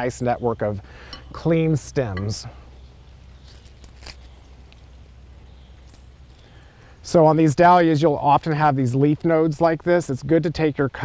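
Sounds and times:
low background hum: 0.0 - 11.0
rustling stems and leaves: 1.1 - 7.8.

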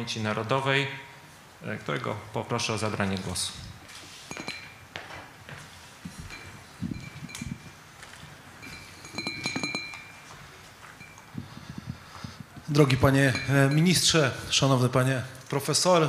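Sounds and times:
metallic clinks: 4.2 - 5.0, 6.1 - 14.3.

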